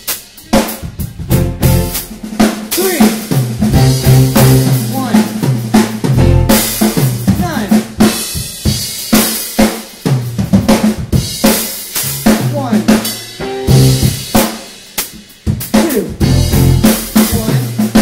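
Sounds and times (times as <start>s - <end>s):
drum kit hits: 0.0s - 18.0s
rock band playing: 0.0s - 18.0s.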